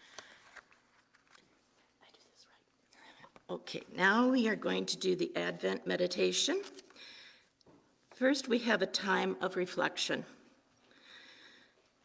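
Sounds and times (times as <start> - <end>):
faint clicks and rustles: 0.1 - 2.2.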